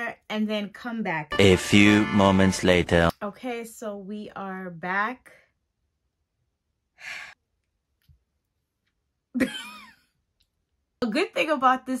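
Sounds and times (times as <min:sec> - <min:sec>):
woman laughing: 0:09.4 - 0:10.0.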